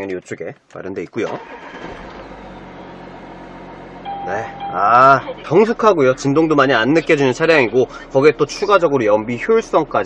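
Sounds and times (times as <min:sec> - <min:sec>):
diesel engine idling: 0:01.4 - 0:10.0.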